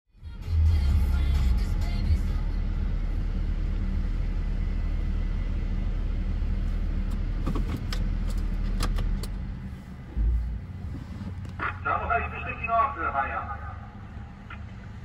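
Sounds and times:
car engine idling: 0.2s - 15.0s.

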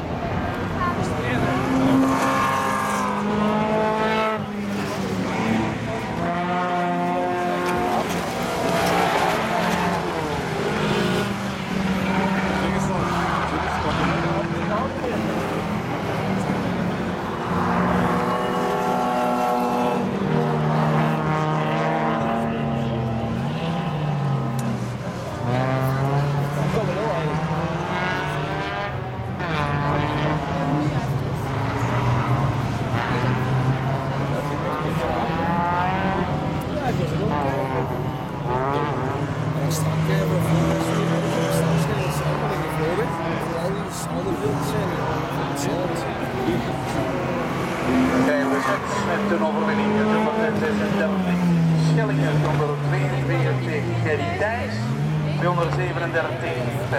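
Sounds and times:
racing car engines revving: 0.0s - 56.9s.

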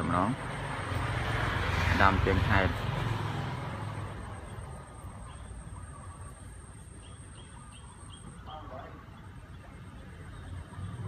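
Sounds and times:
passing vehicle rumble: 0.0s - 11.0s.

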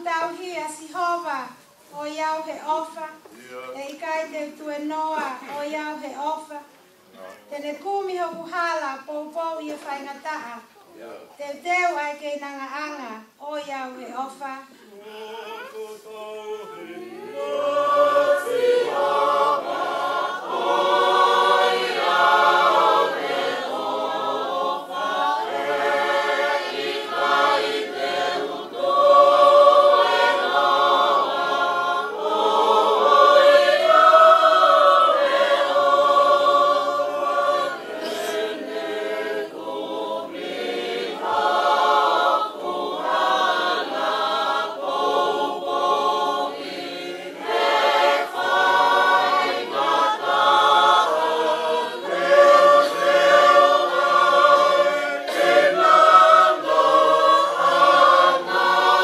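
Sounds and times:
choir singing in harmony: 14.9s - 59.0s.

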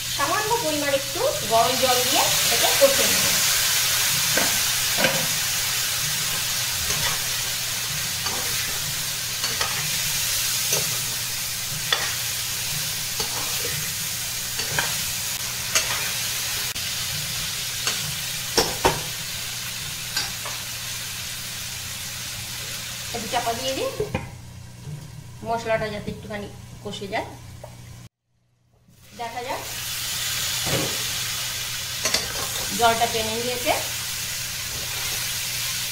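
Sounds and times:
vegetables sizzling in pan: 0.0s - 28.1s, 28.9s - 35.9s
spatula scraping and knocking pan: 6.1s - 10.0s.

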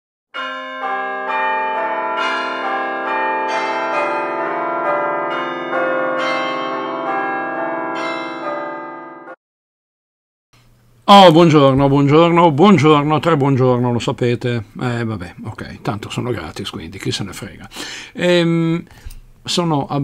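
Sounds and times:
bells chiming: 0.4s - 9.3s.

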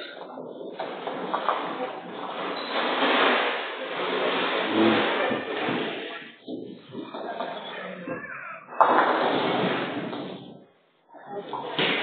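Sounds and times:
bowling balls rolling: 0.0s - 10.7s.

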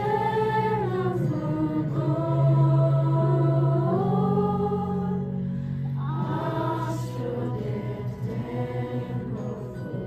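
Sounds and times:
youth choir singing: 0.0s - 5.4s, 6.0s - 10.0s.

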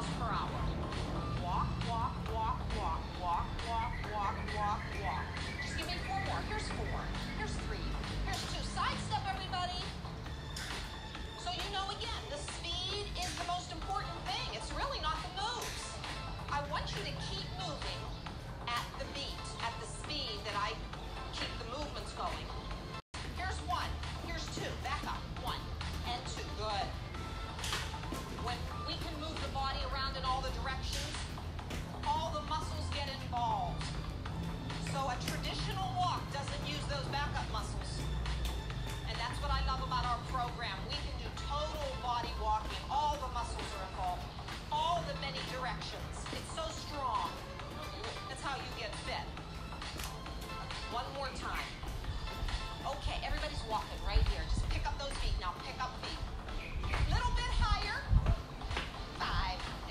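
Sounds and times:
upbeat workout music: 0.0s - 59.9s.

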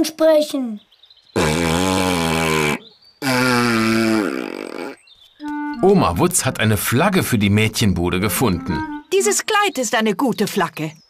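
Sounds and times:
raspberries blown with lips: 1.4s - 5.9s.

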